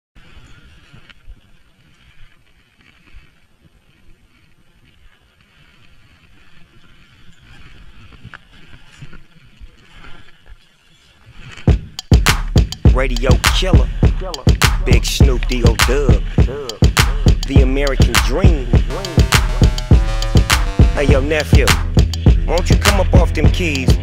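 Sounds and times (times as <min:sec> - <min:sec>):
loud hip-hop music: 0:11.7 - 0:24.0.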